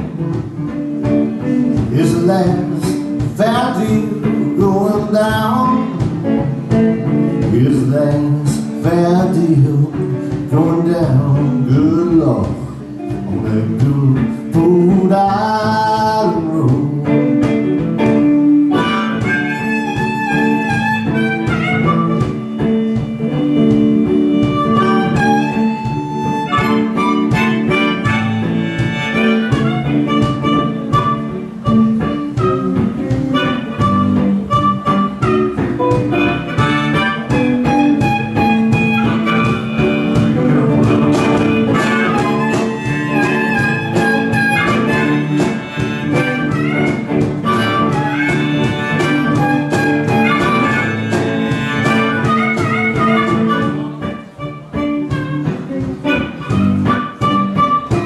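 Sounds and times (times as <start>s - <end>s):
picked guitar: 0.0s - 58.0s
blues harmonica solo: 17.1s - 58.0s.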